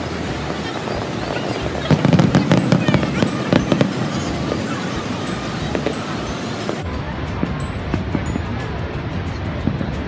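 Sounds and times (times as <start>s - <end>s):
fireworks popping and crackling: 0.0s - 10.0s
fireworks bang: 0.5s - 6.8s.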